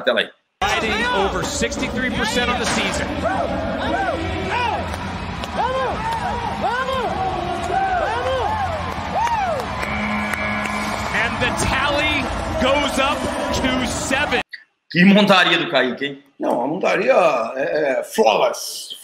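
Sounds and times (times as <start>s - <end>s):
broadcast voices: 0.6s - 5.2s, 11.1s - 19.0s
arena crowd noise: 0.6s - 14.5s
steady horn: 9.6s - 14.3s.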